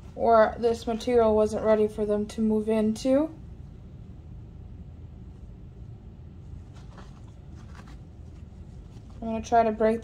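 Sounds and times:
steady low hum: 0.0 - 10.0
soft crinkles: 6.3 - 9.5.

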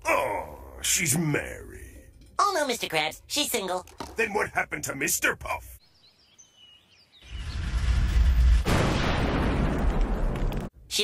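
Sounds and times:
faint bird chirps: 5.7 - 7.9.

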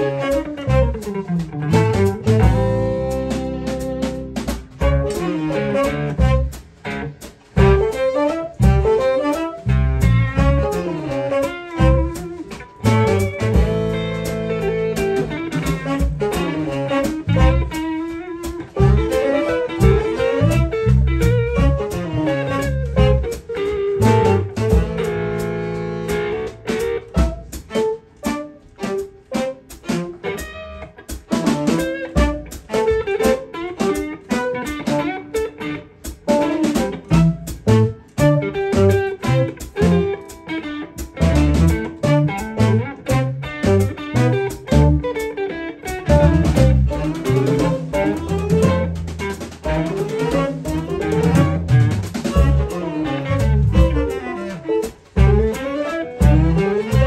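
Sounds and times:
electric guitar: 0.0 - 57.0
live instrumental band playing: 0.0 - 57.0.

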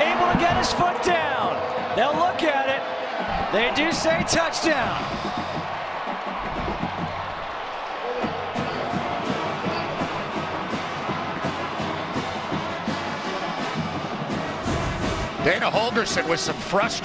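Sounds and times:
stadium crowd cheering: 0.0 - 17.0
music with steady drum beat: 3.2 - 17.0.

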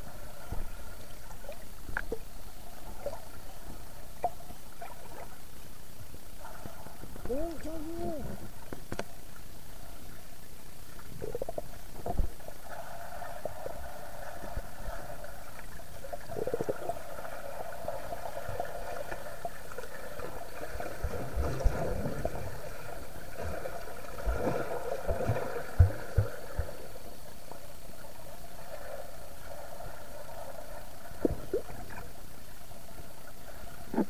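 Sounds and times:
muffled underwater rumble: 0.0 - 27.9
bubbling from swimming strokes: 11.1 - 15.1, 16.0 - 18.5, 20.4 - 22.9, 31.1 - 32.0.

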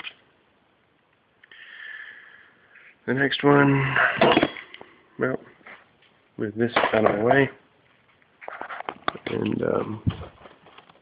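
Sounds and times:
man speaking: 3.0 - 4.2, 5.2 - 5.5, 6.4 - 7.6, 9.2 - 10.1.

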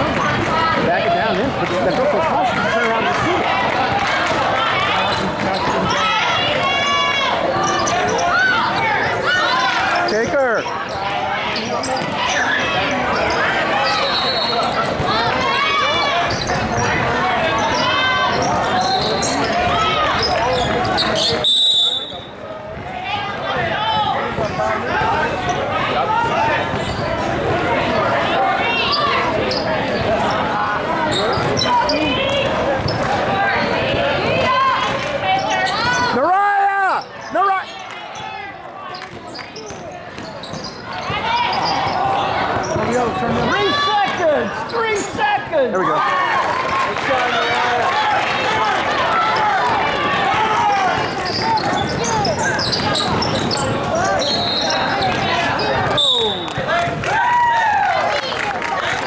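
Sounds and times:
many overlapping voices: 0.0 - 59.0
loud shout: 2.0 - 22.2, 33.1 - 39.0, 40.9 - 59.0
sneakers squeaking: 4.8 - 36.2, 36.9 - 45.3, 49.3 - 57.0
referee's whistle blast: 21.3 - 22.3, 56.0 - 56.6
basketball bouncing on court: 22.3 - 25.5, 39.0 - 43.1.

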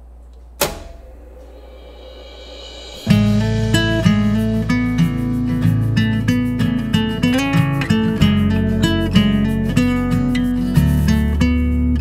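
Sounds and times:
cassette deck hum: 0.0 - 2.0
tape hiss: 0.0 - 12.0
cassette deck key clunk: 0.6 - 1.2.

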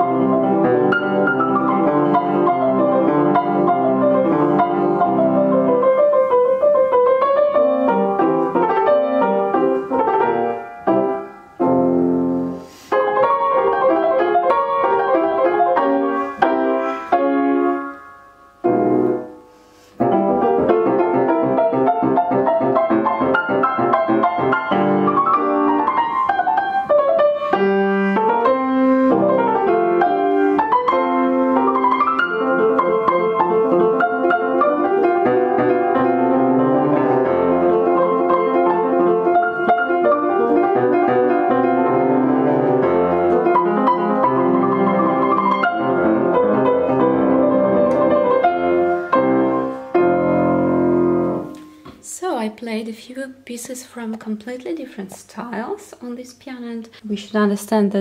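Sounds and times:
fortepiano playing classical passage: 0.0 - 52.1.

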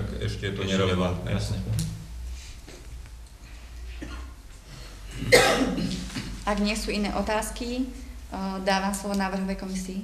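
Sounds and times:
low steady hum: 0.0 - 10.0
person coughing: 4.0 - 4.4, 5.1 - 6.4.

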